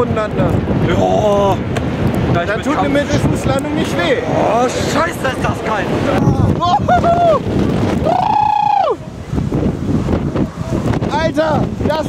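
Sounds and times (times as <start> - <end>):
storm gust buffeting microphone: 0.0 - 12.0
person yelling: 6.4 - 7.4, 8.0 - 9.0.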